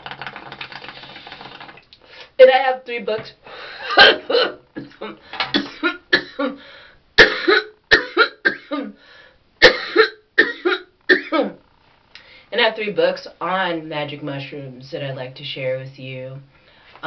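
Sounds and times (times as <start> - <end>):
woman coughing: 3.9 - 6.6, 7.2 - 9.0, 9.6 - 11.6.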